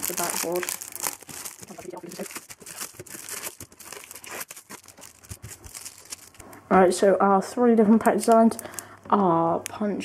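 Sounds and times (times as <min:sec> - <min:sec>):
foil wrappers crinkling: 0:00.0 - 0:06.5, 0:08.0 - 0:09.0.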